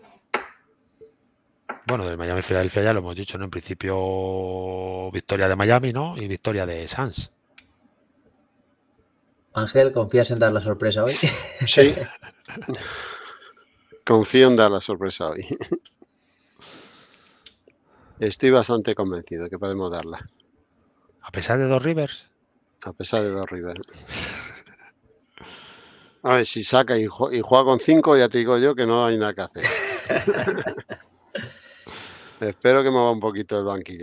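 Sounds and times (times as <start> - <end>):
man speaking: 9.6 - 13.0, 14.0 - 15.8, 22.8 - 24.0, 26.2 - 31.0
breathy exhale into microphone: 31.5 - 32.4.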